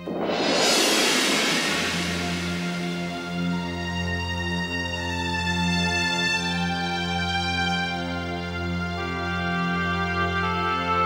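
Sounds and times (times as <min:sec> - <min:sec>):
noisy crash-like swell: 0:00.0 - 0:04.5.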